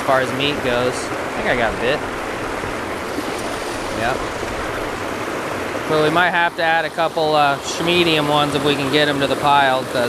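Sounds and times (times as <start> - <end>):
water rushing over rocks: 0.0 - 10.0.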